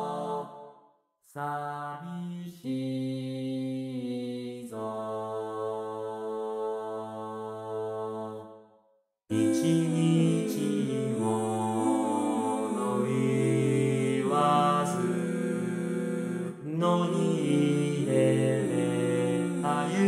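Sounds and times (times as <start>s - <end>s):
synthesized male chorus singing: 0.0s - 0.8s, 1.4s - 8.6s, 9.3s - 20.0s.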